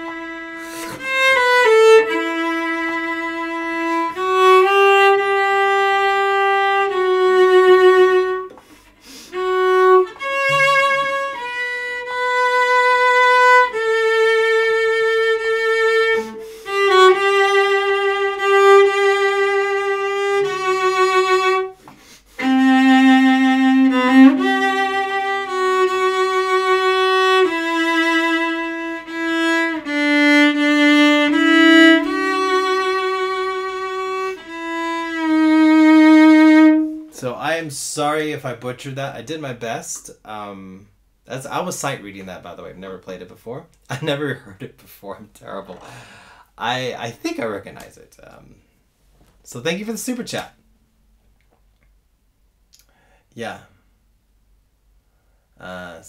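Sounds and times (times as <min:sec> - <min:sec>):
cello playing slow melody: 0:00.0 - 0:08.7, 0:09.3 - 0:21.8, 0:22.4 - 0:37.3.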